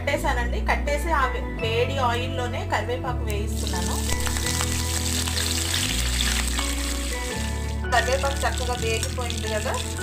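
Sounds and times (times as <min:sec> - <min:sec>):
background music: 0:00.0 - 0:10.0
food sizzling in hot oil: 0:03.6 - 0:10.0.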